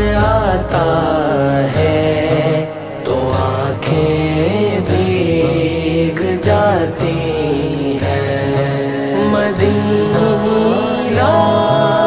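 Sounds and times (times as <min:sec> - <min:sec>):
low held vocal backing: 0:00.0 - 0:12.0
man singing: 0:00.0 - 0:12.0.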